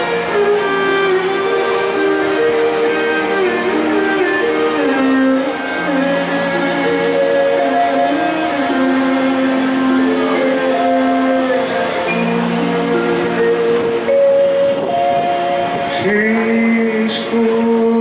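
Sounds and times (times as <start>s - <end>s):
harmonium: 0.0s - 18.0s
violin: 0.0s - 18.0s
man singing: 15.7s - 18.0s.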